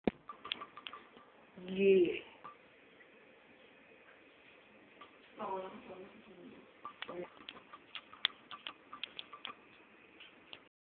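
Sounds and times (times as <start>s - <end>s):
light uneven clicks: 6.8s - 10.7s.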